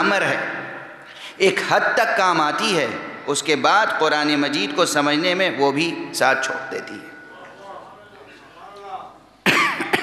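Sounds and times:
person coughing loudly: 9.4 - 10.0.

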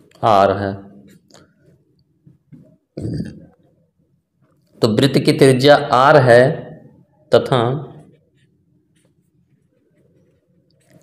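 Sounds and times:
man's short throaty vocal noise: 3.0 - 3.5.

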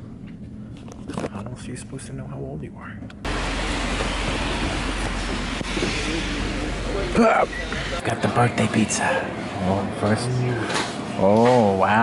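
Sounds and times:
car rumble and hiss inside cabin: 3.2 - 8.0.

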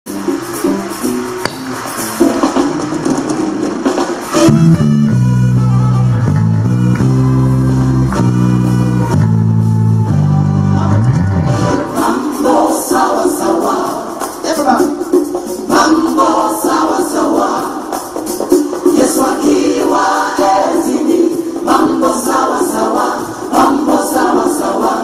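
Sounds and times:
electric bass notes: 0.1 - 3.3, 3.9 - 12.0
busy drums and cymbals: 0.1 - 5.6, 11.9 - 25.0
gospel song recording: 0.2 - 25.0.

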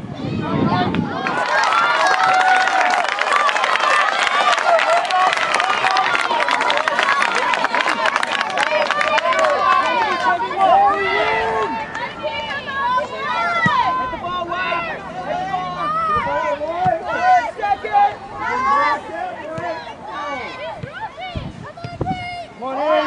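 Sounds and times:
crowd shouting and calling: 0.0 - 23.0.

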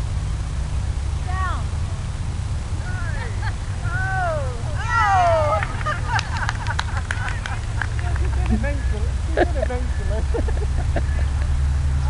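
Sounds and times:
low rumble of wind: 0.0 - 12.0.

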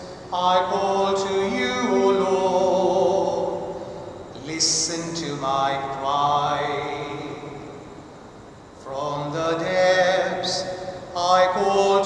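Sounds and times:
person singing devotional chant: 0.0 - 7.8, 8.8 - 12.0.

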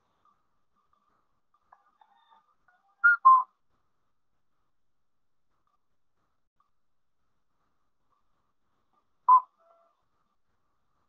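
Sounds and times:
faint brief tone: 3.0 - 3.5, 9.3 - 9.9.

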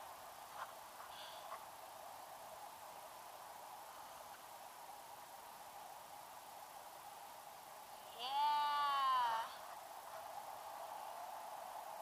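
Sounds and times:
high-pitched vocal whoop: 8.2 - 9.6.

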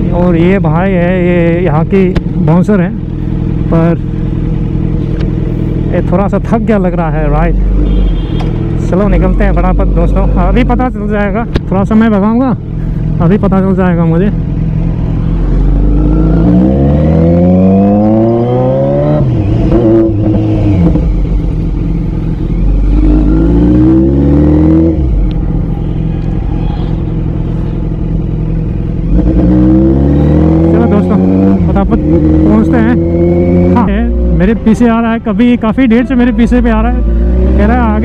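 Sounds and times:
motorcycle engine revving: 0.0 - 38.0.

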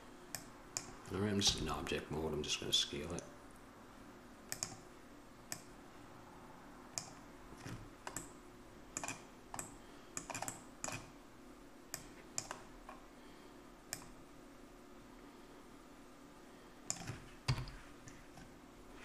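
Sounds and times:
faint steady hum: 0.0 - 19.0
keyboard and mouse clicking: 4.5 - 4.8, 7.0 - 7.2, 8.0 - 8.3, 9.0 - 11.1, 11.9 - 12.6, 16.9 - 17.8.

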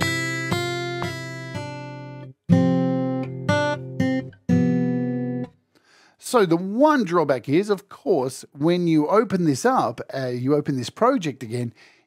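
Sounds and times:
plucked guitar-like chords: 0.0 - 5.6.

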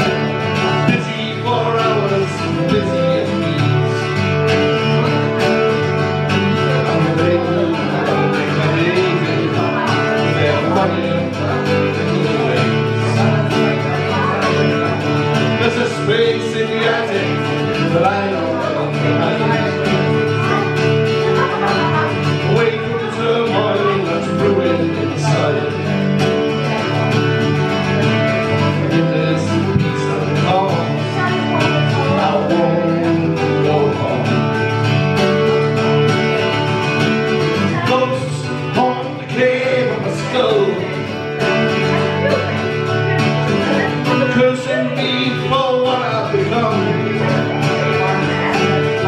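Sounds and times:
man singing: 0.0 - 49.0
mandolin strumming: 0.0 - 49.0.

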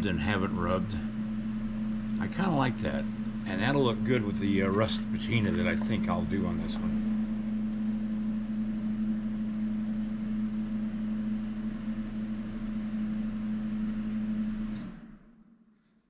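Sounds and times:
machine motor humming: 0.7 - 8.0.

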